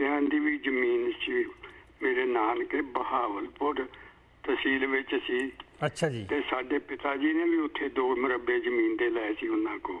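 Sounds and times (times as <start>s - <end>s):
person talking over telephone: 5.8s - 6.5s.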